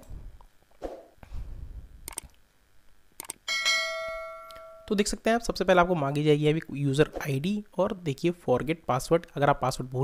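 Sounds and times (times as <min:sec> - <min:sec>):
mouse-like clicks: 0:02.1 - 0:02.4, 0:03.2 - 0:03.4
bright bell ding: 0:03.5 - 0:05.0.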